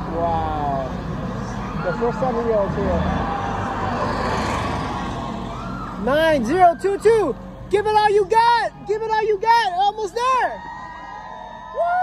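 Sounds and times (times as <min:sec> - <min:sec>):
golf cart driving past: 0:00.0 - 0:06.5.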